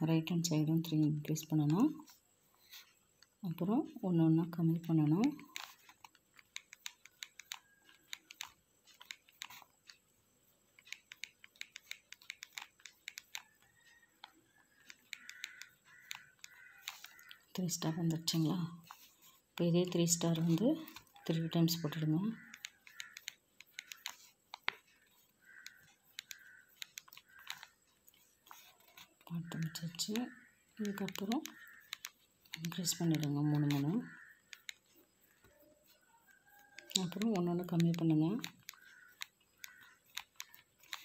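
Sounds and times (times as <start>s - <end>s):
pencil scratching on paper: 3.6s - 10.0s, 10.7s - 41.0s.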